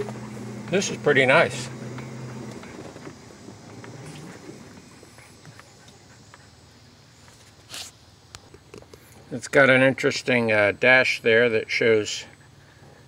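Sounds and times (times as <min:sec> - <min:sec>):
tyres crunching on dirt: 0:00.0 - 0:05.6.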